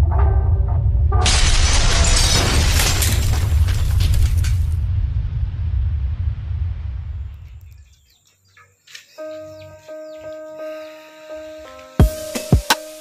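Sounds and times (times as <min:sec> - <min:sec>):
low rumble: 0:00.0 - 0:08.1.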